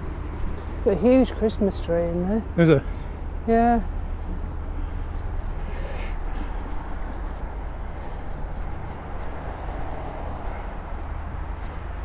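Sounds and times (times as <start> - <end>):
distant road traffic rumble: 0.0 - 12.0.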